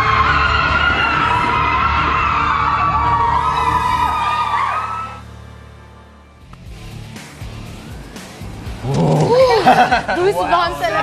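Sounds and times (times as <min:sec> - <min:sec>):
women screaming and cheering: 0:00.0 - 0:05.3
background music: 0:00.0 - 0:11.0.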